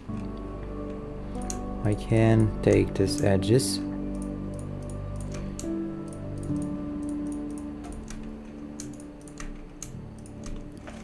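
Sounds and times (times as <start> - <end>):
soft background music: 0.0 - 11.0
keyboard clicks: 1.4 - 1.6, 4.1 - 11.0
computer mouse clicks: 4.5 - 11.0.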